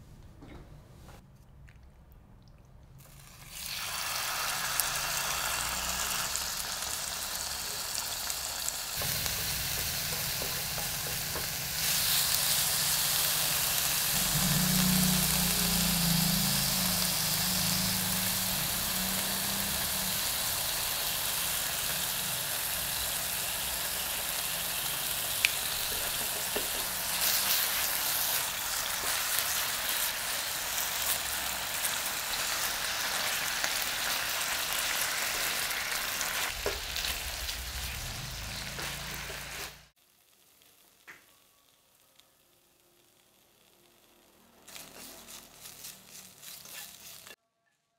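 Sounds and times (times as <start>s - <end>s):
food sizzling in oil: 3.0s - 47.4s.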